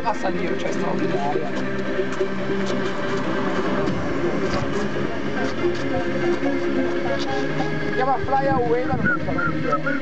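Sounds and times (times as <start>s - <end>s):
indistinct voices talking: 0.0s - 10.0s
steady background noise: 0.0s - 10.0s.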